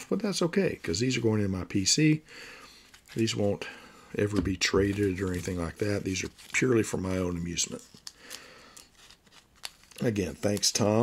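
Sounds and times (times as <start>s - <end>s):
cards rustling in plastic sleeves: 0.6s - 11.0s.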